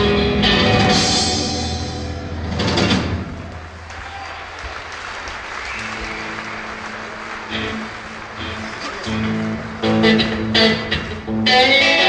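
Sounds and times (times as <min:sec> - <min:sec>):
live rock band playing: 0:00.0 - 0:03.3, 0:06.1 - 0:12.0
audience applauding: 0:03.3 - 0:11.2
held guitar notes: 0:07.4 - 0:12.0.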